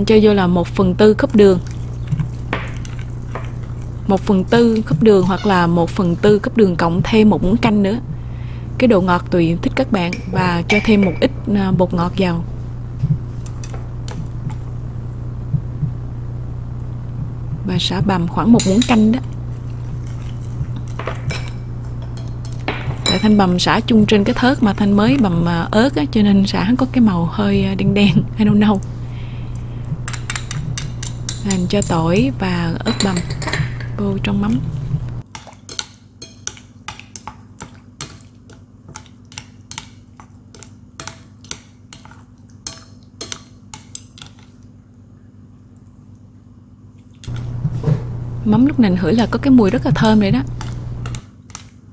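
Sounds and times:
chopsticks stirring in a ceramic bowl: 0.8s - 7.6s, 18.5s - 25.9s, 29.5s - 34.6s, 35.3s - 44.7s, 47.2s - 51.9s.

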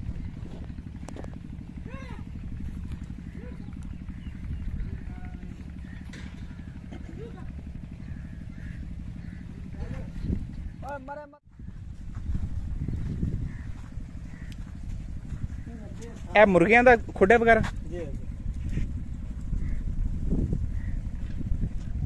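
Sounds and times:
engine running with low throb: 0.0s - 22.0s.

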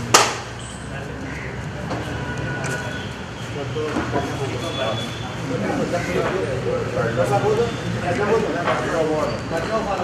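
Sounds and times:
men talking indistinctly: 0.8s - 10.0s.

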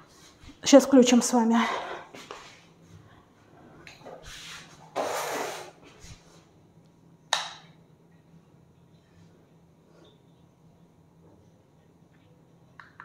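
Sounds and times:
faint low hum: 5.9s - 13.0s.

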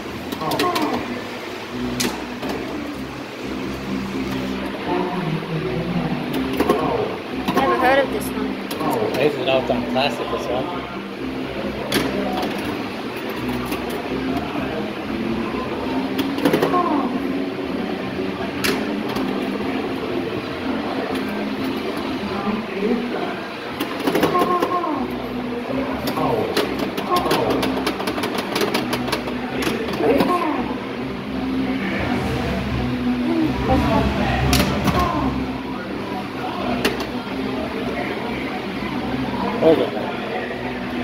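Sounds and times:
voices talking: 0.0s - 1.5s, 3.6s - 12.7s, 28.9s - 41.0s
pinball machine clicks and knocks: 16.1s - 16.9s, 23.8s - 24.8s, 26.0s - 30.4s.

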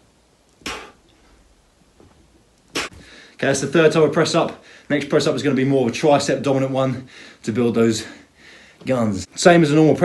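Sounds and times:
man's sharp exhale: 0.6s - 1.0s.

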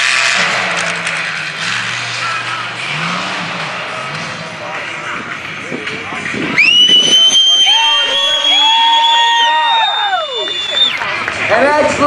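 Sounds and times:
truck engine revving under load: 0.0s - 9.1s.

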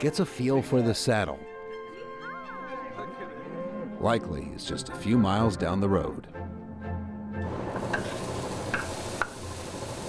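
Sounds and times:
patties sizzling on a griddle: 7.6s - 10.0s.

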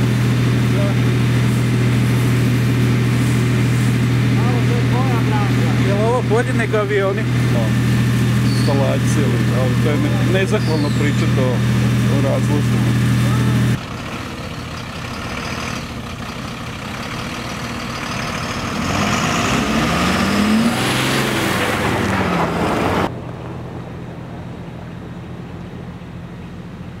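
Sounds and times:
fire engine motor humming: 0.0s - 27.0s
man's voice: 8.5s - 13.6s.

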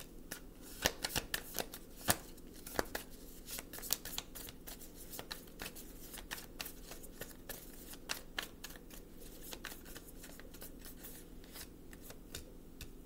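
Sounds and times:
cards being shuffled: 0.3s - 12.5s.

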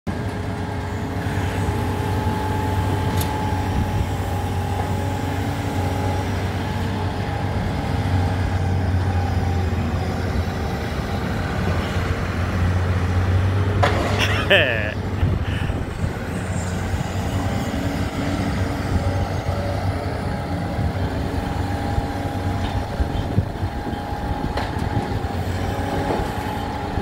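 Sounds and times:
excavator diesel engine running: 0.1s - 27.0s.

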